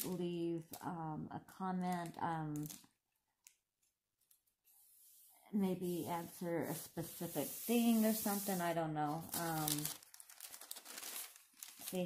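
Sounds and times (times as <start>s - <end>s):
thin sheet crinkling: 1.8s - 4.5s, 6.7s - 12.0s.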